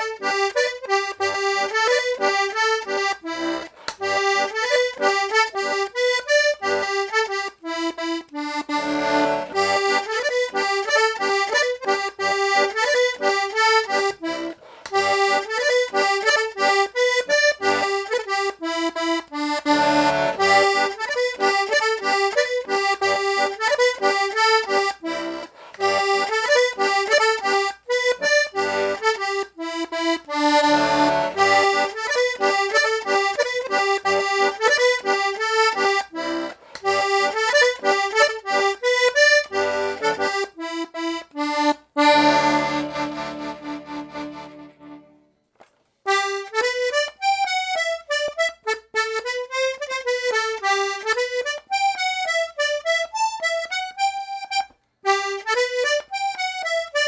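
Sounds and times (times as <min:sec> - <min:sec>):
accordion playing lively tune: 0:00.0 - 0:45.4, 0:46.1 - 0:57.0
accordion held chords: 0:00.0 - 0:57.0.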